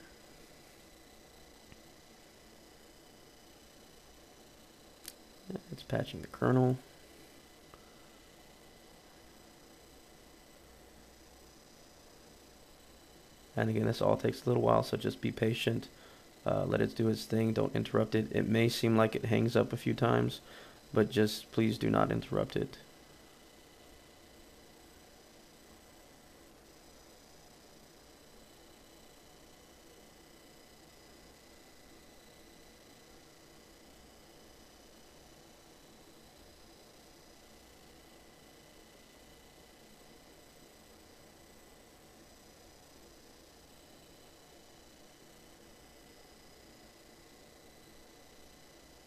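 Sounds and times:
faint room tone hiss: 0.0 - 49.0.

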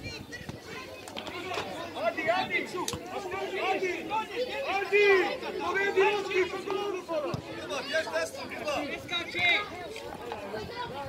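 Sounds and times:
children shouting: 0.0 - 11.0.

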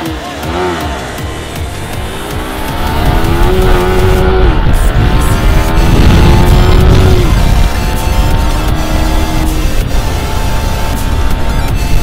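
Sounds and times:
motorcycles accelerating hard: 0.0 - 12.0.

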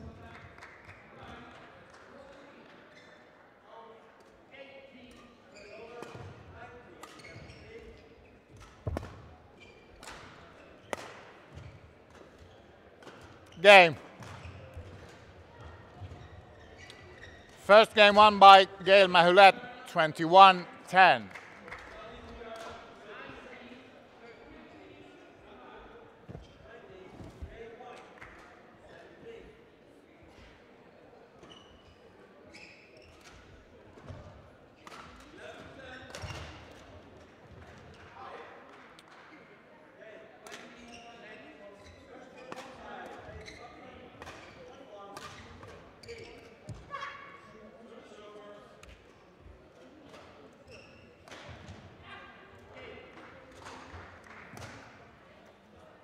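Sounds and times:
indistinct echoing voices: 13.6 - 14.0, 17.6 - 21.3.

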